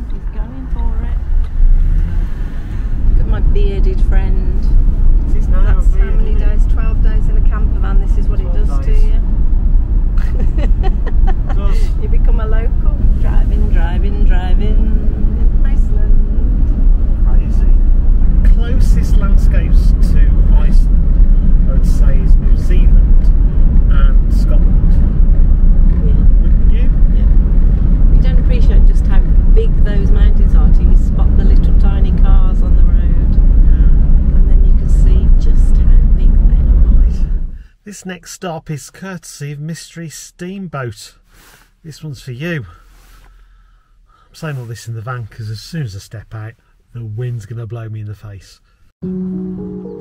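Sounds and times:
van road and engine rumble: 0:00.0 - 0:50.0
man talking: 0:11.5 - 0:12.0, 0:18.4 - 0:21.0, 0:21.6 - 0:25.1, 0:25.9 - 0:27.0, 0:37.8 - 0:41.2, 0:41.8 - 0:42.8, 0:44.3 - 0:48.6.

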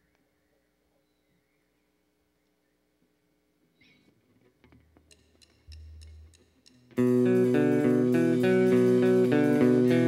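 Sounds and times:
drum stick count-in ticks: 0:05.0 - 0:07.1.

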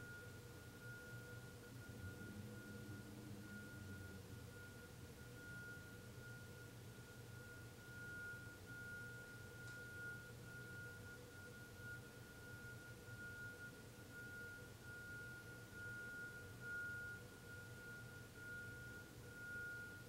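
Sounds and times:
high-pitched whine: 0:00.0 - 0:08.4
low hum: 0:00.8 - 0:06.6.

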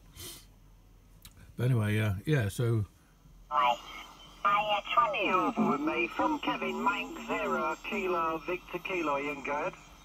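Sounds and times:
man talking over radio speaker: 0:04.5 - 0:09.9.

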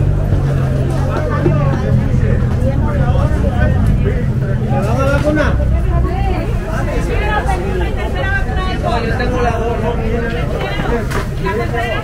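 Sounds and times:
low rumble: 0:00.0 - 0:09.9
people talking: 0:00.0 - 0:12.0.

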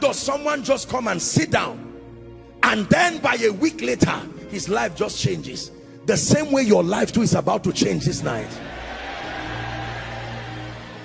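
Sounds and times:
soft music with held chords: 0:00.0 - 0:11.0.

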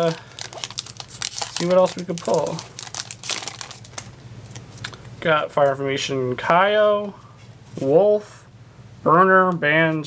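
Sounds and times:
foil wrapper crinkling: 0:00.0 - 0:05.0.

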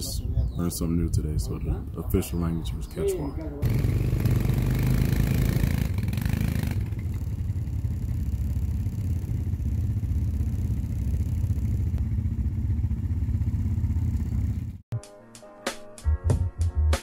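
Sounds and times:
quad bike engines running: 0:03.6 - 0:14.8.

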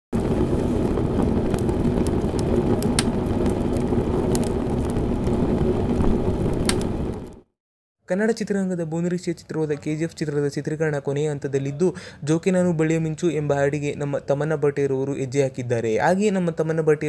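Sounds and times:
dense rumble with crackles: 0:00.1 - 0:07.5.

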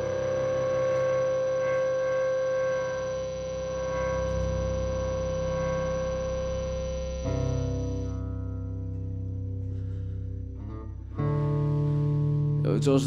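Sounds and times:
electric guitar and bass droning: 0:00.0 - 0:13.0.

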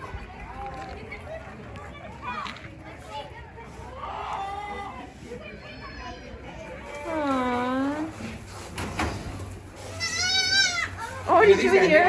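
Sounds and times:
young goat bleating: 0:09.9 - 0:11.1.

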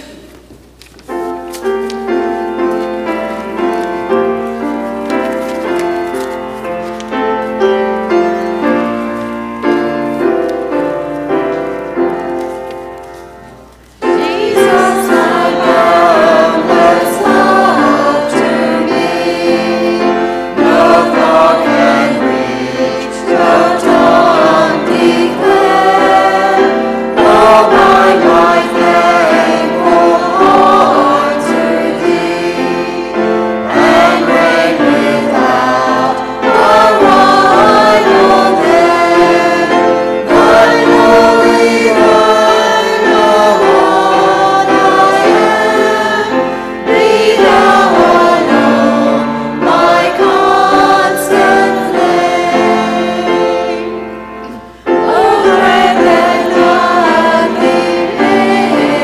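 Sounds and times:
mixed choir singing a hymn: 0:00.0 - 0:00.3, 0:14.0 - 0:59.0.

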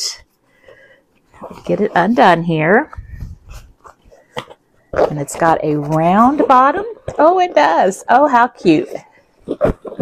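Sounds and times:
cloth bag rustling: 0:01.3 - 0:07.3.

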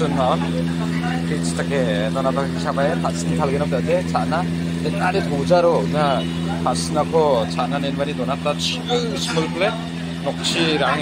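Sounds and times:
air cooler motor hum: 0:00.0 - 0:11.0.

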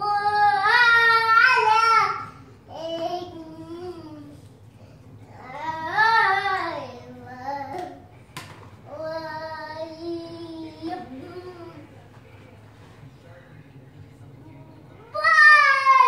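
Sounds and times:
toddler singing: 0:00.0 - 0:04.4.

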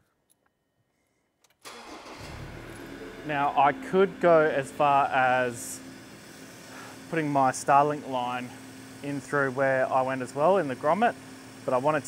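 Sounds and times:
car engine starting and running: 0:01.6 - 0:06.6.

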